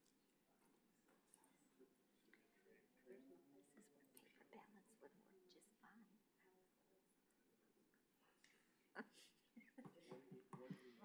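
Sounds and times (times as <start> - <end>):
faint voices murmuring: 0.5 - 11.0.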